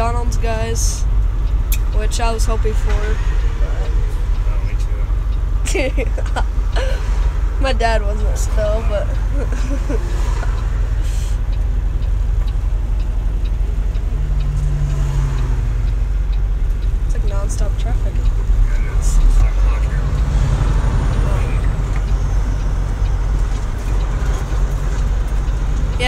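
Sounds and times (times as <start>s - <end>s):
truck diesel engine rumble: 0.0s - 26.0s.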